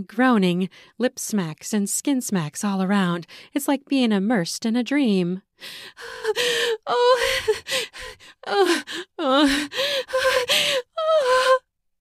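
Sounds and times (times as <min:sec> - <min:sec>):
woman moaning and gasping: 0:05.6 - 0:11.7.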